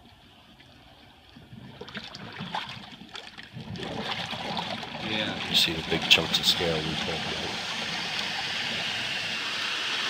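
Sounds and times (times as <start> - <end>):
high-pressure water rushing: 3.8 - 10.0.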